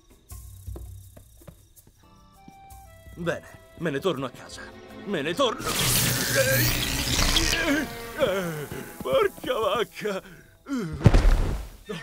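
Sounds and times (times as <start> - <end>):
crickets chirping: 0.0 - 11.0
soft music: 0.0 - 11.0.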